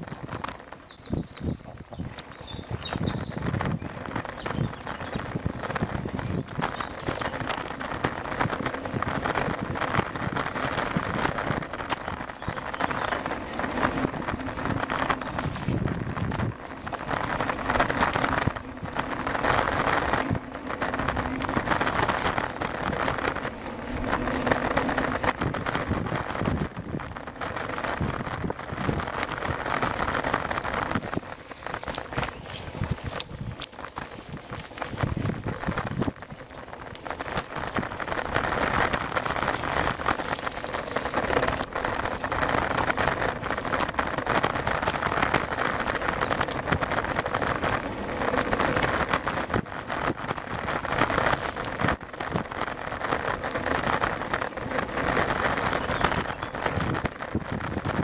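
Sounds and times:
bicycle riding over gravel: 0.0 - 58.0.

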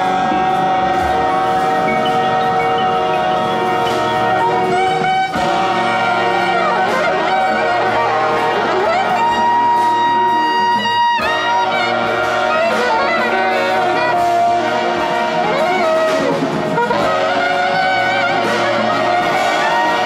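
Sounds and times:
horn band playing jazz: 0.0 - 20.0.

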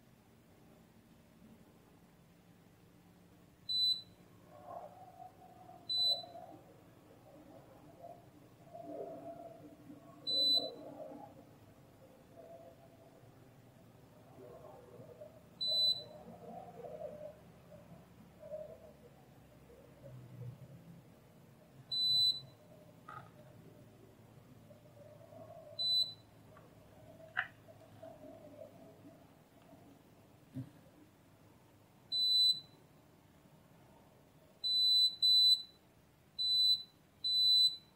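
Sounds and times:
multimeter continuity beeps: 3.7 - 4.2, 5.9 - 6.4, 10.3 - 10.8, 15.6 - 16.2, 21.9 - 23.2, 25.8 - 26.3, 32.1 - 32.8, 34.6 - 35.8, 36.4 - 37.9.

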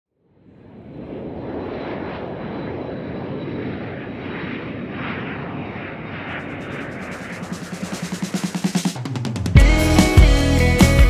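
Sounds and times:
rumbling engine drone: 6.4 - 9.0
thin high whine: 6.4 - 9.1.

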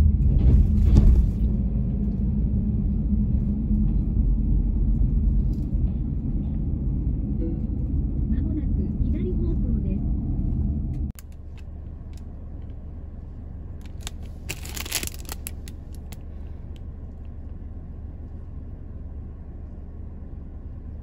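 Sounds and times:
car driving rumble from inside: 0.0 - 21.0.

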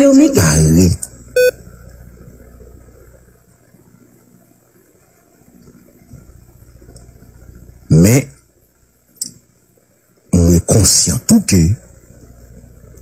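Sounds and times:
faint low background rumble: 0.0 - 13.0
short beep: 1.4 - 1.6.

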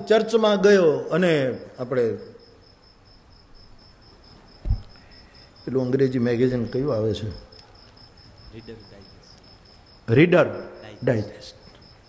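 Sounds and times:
cricket chirping: 0.0 - 12.0
low thump: 4.6 - 5.0.

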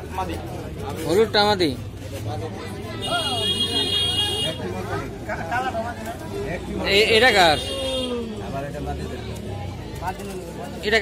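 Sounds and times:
vehicle horn: 3.0 - 4.6.

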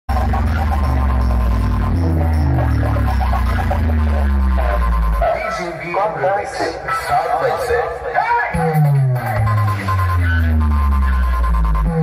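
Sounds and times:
deep sustained bass drone: 0.1 - 5.4, 8.6 - 12.0
stepping bass melody: 0.1 - 6.2, 8.5 - 12.0
loud electronic dance music: 0.1 - 12.0.

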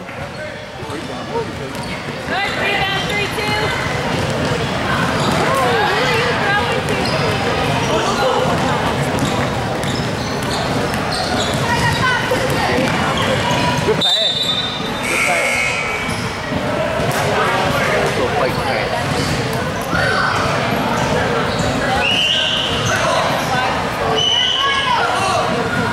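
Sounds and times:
voices calling out: 0.3 - 25.9
basketballs bouncing on wooden floor: 0.9 - 14.0, 19.0 - 19.5.

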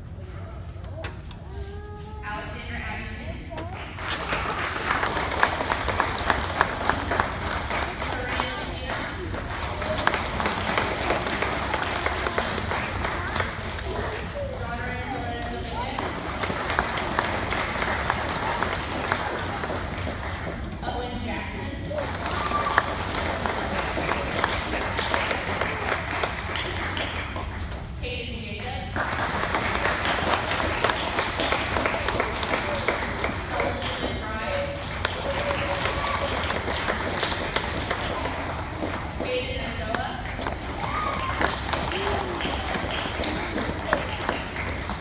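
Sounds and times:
audience applauding: 3.8 - 14.5, 15.8 - 20.7, 21.9 - 27.8, 29.0 - 39.2, 40.2 - 45.0.

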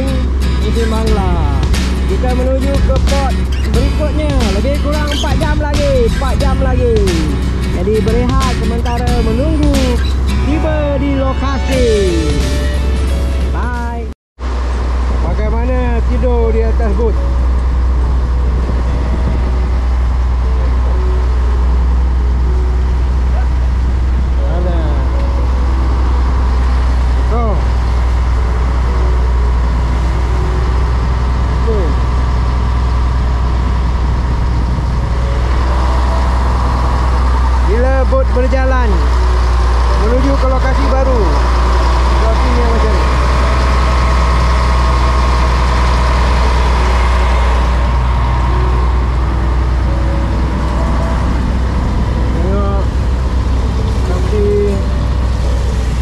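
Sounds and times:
indistinct voices: 0.0 - 12.8, 23.1 - 56.0
boat engine running: 0.0 - 56.0.

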